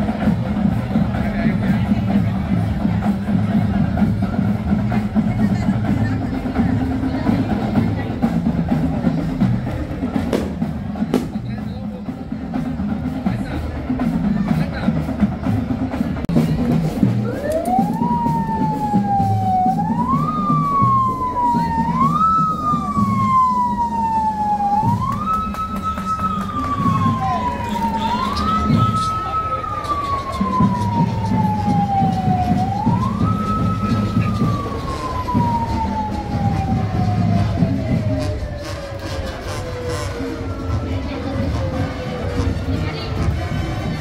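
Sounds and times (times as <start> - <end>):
vehicle siren winding up and down: 17.2 - 42.0.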